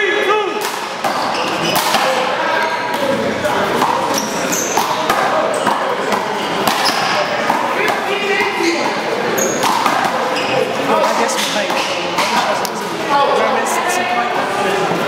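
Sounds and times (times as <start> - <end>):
chatter of voices: 0.0 - 15.0.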